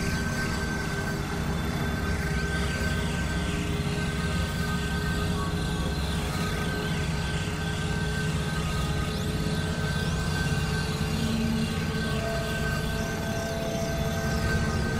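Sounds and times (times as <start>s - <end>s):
low synthesizer drone: 0.0s - 14.9s.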